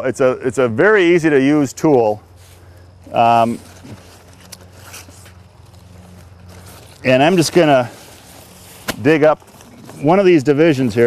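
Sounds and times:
faint handling noises: 0:01.8 - 0:11.0.

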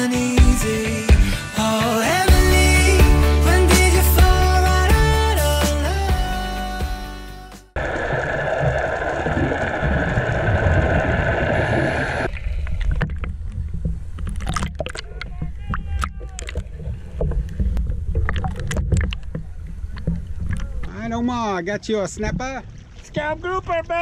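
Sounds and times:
low rumble: 0:07.8 - 0:21.2
muffled underwater rush: 0:07.8 - 0:23.4
water splashing against camera: 0:07.8 - 0:24.0.

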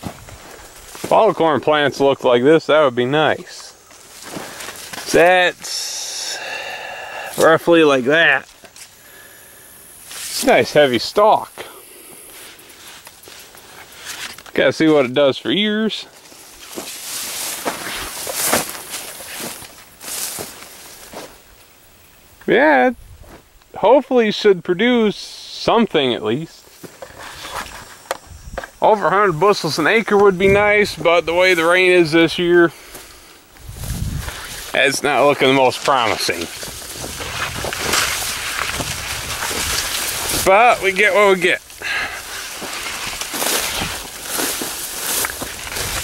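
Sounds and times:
footsteps: 0:00.0 - 0:02.3, 0:03.2 - 0:06.5, 0:10.0 - 0:15.1, 0:16.0 - 0:21.7, 0:23.2 - 0:23.8, 0:26.6 - 0:46.0
corn leaves rustling: 0:00.0 - 0:46.0
wind buffeting microphone: 0:28.2 - 0:28.8, 0:30.3 - 0:31.4, 0:33.6 - 0:34.6, 0:36.7 - 0:40.5.

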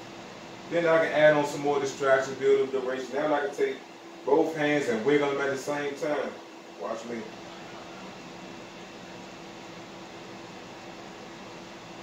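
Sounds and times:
faint constant hum: 0:00.0 - 0:12.0.

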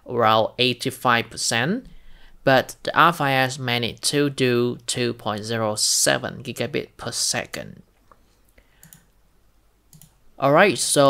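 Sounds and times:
soft clicks: 0:08.0 - 0:09.1, 0:09.9 - 0:10.2.

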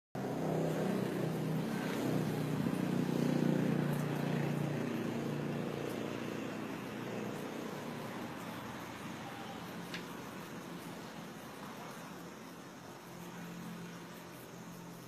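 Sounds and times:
vehicle engine rumble: 0:00.2 - 0:15.0.

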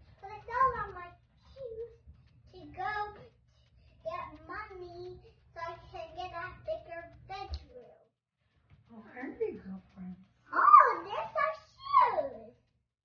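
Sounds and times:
steady low hum: 0:00.0 - 0:12.8.

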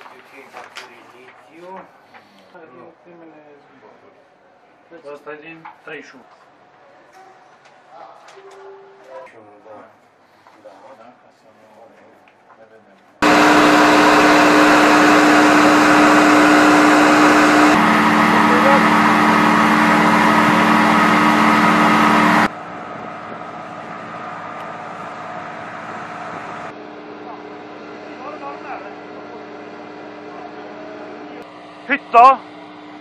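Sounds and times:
turboprop engines droning: 0:13.2 - 0:33.0.

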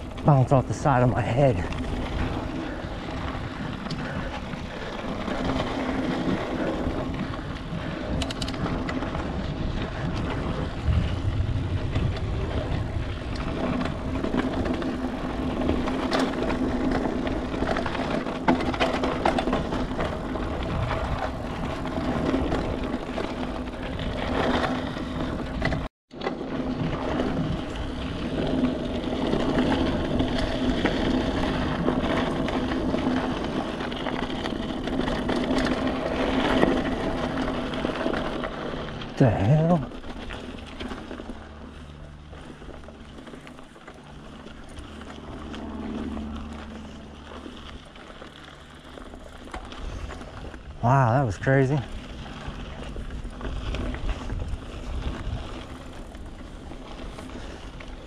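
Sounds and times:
wind buffeting microphone: 0:00.0 - 0:25.9, 0:26.6 - 0:58.0
bike rattling over bumps: 0:00.0 - 0:58.0
bike tyres rolling on dirt: 0:00.0 - 0:58.0.

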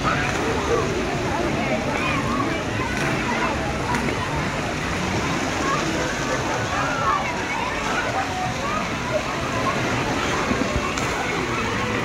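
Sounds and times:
children's voices babbling: 0:00.0 - 0:12.0
water running and splashing: 0:00.0 - 0:12.0.

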